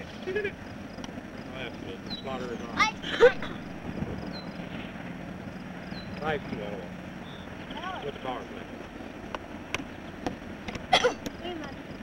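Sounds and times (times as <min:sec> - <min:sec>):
distant diesel locomotive rumble: 0:00.0 - 0:12.0.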